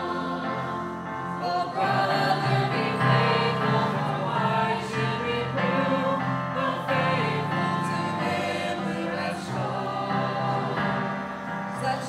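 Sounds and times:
congregation singing a hymn: 0.0 - 12.0.

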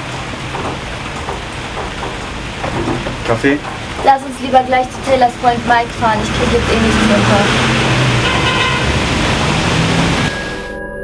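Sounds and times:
loud road traffic noise: 0.0 - 10.7.

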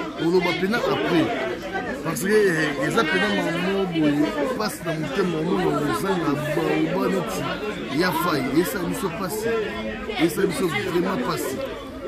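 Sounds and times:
man talking: 0.2 - 1.4, 2.0 - 9.5, 10.2 - 11.6.

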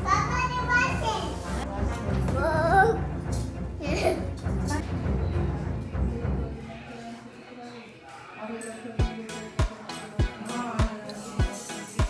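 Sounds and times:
voices in a room: 0.0 - 12.0.

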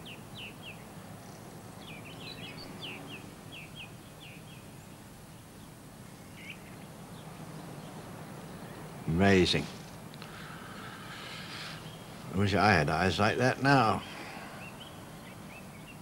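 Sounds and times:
bird chirping: 0.0 - 16.0
steady low hum: 0.0 - 16.0.

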